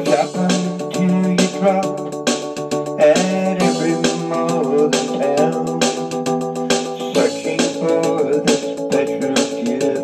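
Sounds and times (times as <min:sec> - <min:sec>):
electronic keyboard country music: 0:00.0 - 0:10.0.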